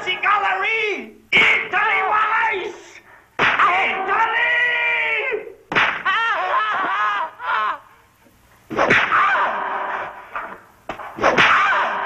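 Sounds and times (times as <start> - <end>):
sharp crack: 3.4 - 3.7, 5.7 - 6.2, 8.7 - 9.4, 10.3 - 12.0.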